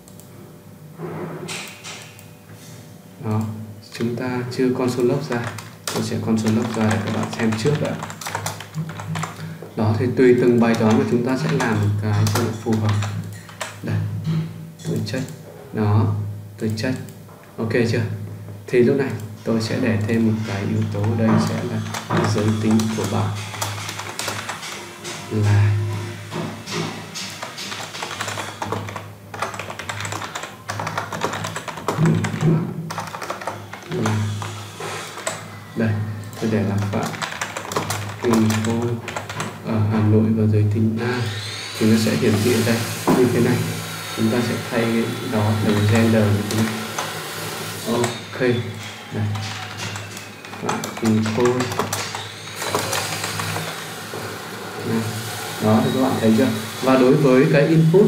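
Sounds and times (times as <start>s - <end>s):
keyboard typing: 3.3s - 9.6s, 10.2s - 15.4s, 19.0s - 40.0s, 44.0s - 57.2s.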